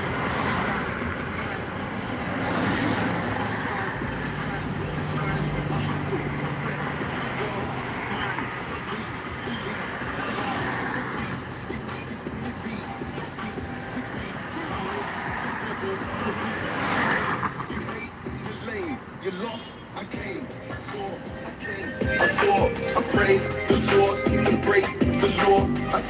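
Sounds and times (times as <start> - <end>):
car radio music: 0.0 - 26.0
voice on radio: 12.6 - 21.8.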